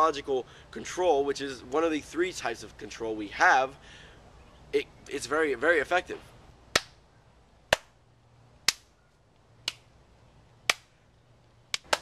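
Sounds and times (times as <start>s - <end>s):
sharp hand claps: 6.8s - 7.0s, 7.7s - 7.9s, 9.6s - 9.9s, 10.7s - 10.9s, 11.7s - 12.0s.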